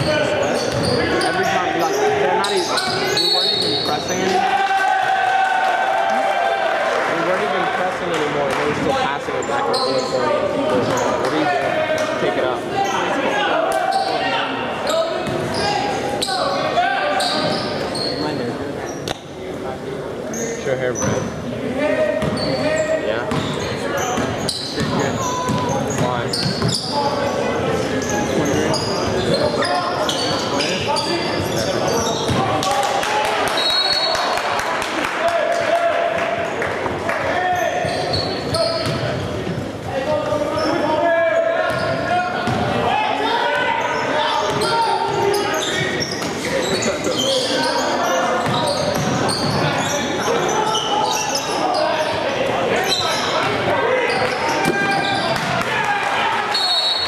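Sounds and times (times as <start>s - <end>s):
sneaker squeaks: 0.0s - 4.4s, 9.4s - 12.2s, 12.8s - 19.4s, 20.3s - 21.4s, 22.0s - 32.6s, 33.5s - 34.3s, 37.4s - 42.8s, 43.7s - 55.6s, 56.5s - 57.0s
basketball bouncing on court: 0.7s - 1.0s, 24.2s - 26.8s, 32.3s - 32.5s, 41.7s - 42.7s, 48.4s - 49.7s.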